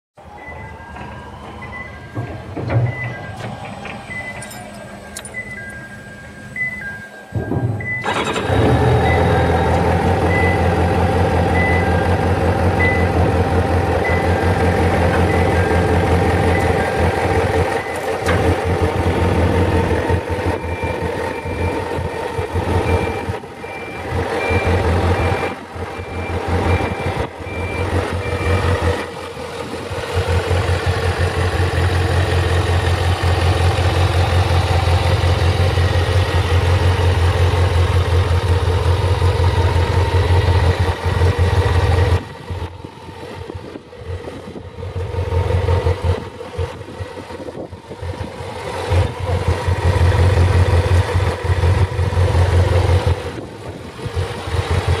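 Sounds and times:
high beep: 4.1s - 8.1s, 12.8s - 13.2s
motorcycle engine idling: 27.8s - 47.4s, 48.8s - 55.0s.

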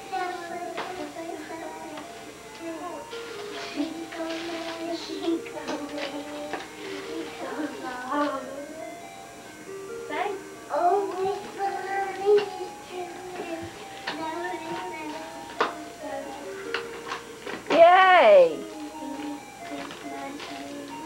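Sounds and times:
girl singing: 0.0s - 8.8s, 10.1s - 16.9s, 18.5s - 21.0s
electronic tune of held notes: 0.0s - 21.0s.

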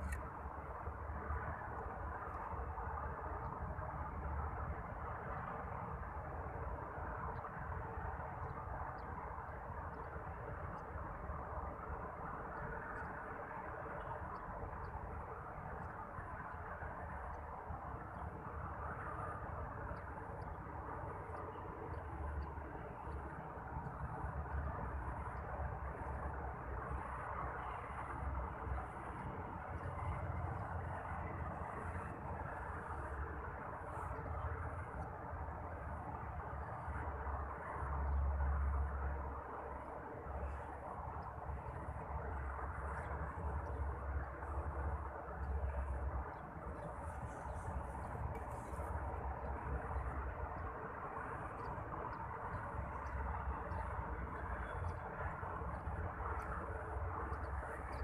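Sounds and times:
outdoor background hiss: 0.0s - 58.0s
wind rumbling on microphone: 0.0s - 58.0s.

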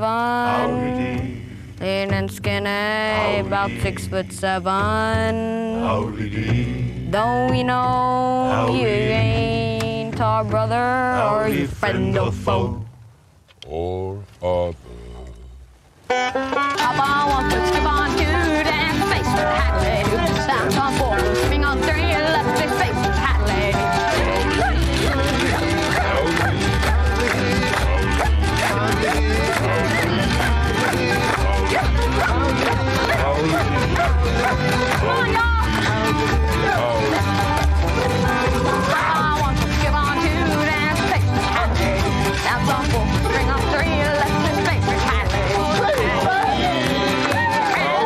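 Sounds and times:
man singing: 0.0s - 2.0s, 2.9s - 4.4s, 5.7s - 9.8s, 10.6s - 12.8s, 16.8s - 48.0s
string band playing country music: 0.0s - 12.8s, 16.0s - 48.0s
acoustic guitar notes: 0.0s - 48.0s
plucked banjo: 1.8s - 5.6s, 16.1s - 48.0s.

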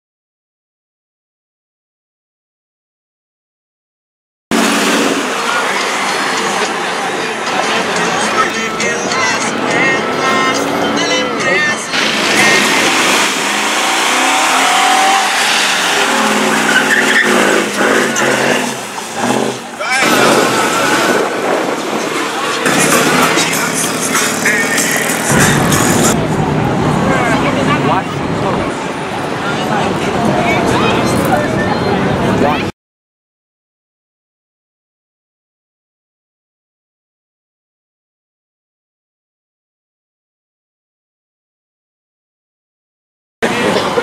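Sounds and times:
car engine revving: 4.5s - 32.6s
crowd voices and shouting: 4.5s - 32.7s, 43.4s - 44.0s
tyres squealing: 4.6s - 26.2s.

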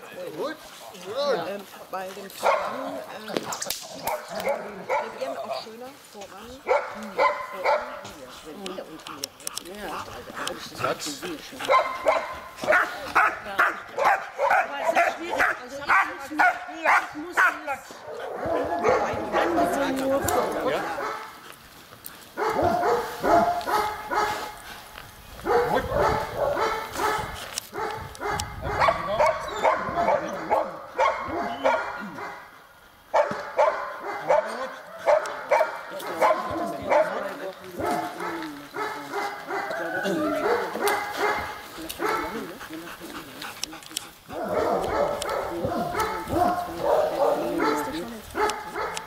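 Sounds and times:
dog barking and yelping: 3.9s - 5.3s, 11.6s - 21.3s, 22.4s - 24.6s, 25.4s - 32.5s, 33.1s - 42.8s, 44.3s - 49.0s.

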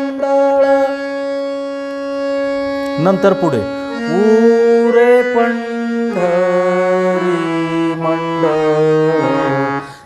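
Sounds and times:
harmonium holding a note: 0.0s - 10.0s.

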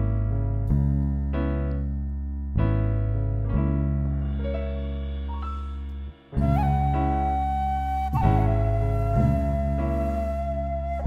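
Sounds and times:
low sustained band accompaniment: 4.3s - 11.0s
bamboo flute holding notes: 6.4s - 11.0s.

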